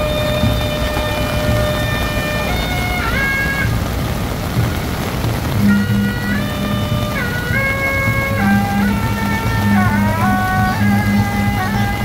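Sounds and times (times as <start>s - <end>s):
drum beats: 0.0s - 12.0s
heavy rain hissing on street: 0.0s - 12.0s
suona melody: 0.0s - 12.0s.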